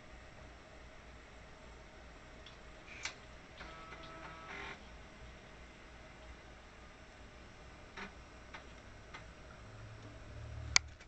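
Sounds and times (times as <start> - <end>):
steady low hum: 0.0 - 11.0
floppy drive buzzing: 2.4 - 5.6, 7.6 - 11.0
floppy disk drive click: 3.0 - 4.8.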